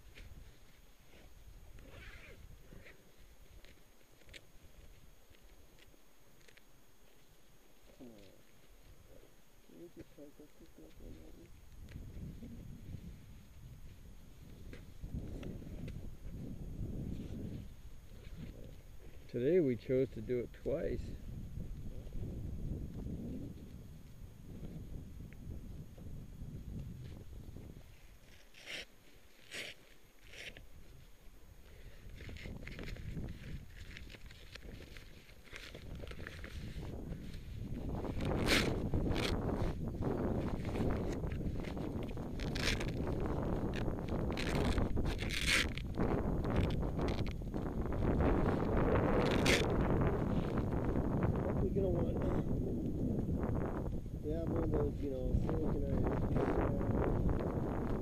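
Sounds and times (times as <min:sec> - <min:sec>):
wind rumble on microphone: 0:09.8 - 0:28.5, 0:30.5 - 0:58.0.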